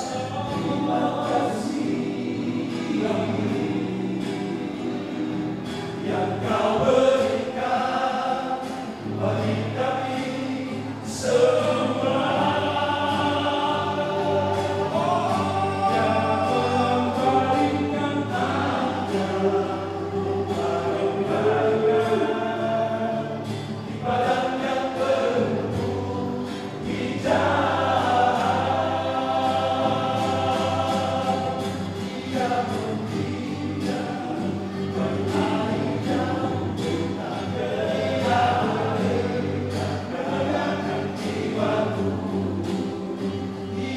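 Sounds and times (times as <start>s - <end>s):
male group singing gospel: 0.0s - 43.9s.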